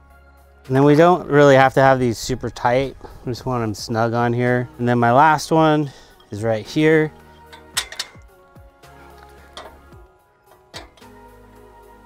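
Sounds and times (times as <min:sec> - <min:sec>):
background music: 0:00.0 - 0:12.0
metallic clicks and taps: 0:07.4 - 0:08.3, 0:09.2 - 0:10.0.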